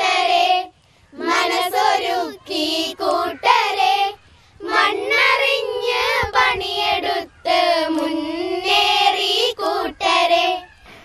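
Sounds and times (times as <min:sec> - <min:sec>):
girls singing together: 0:00.0 - 0:11.0.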